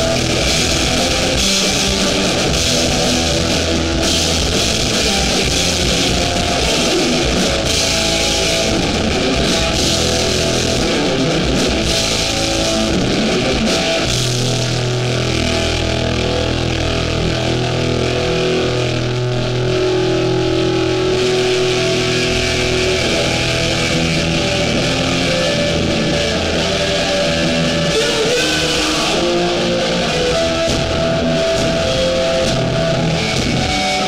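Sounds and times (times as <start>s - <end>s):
hardcore band playing live: 0.0s - 34.0s.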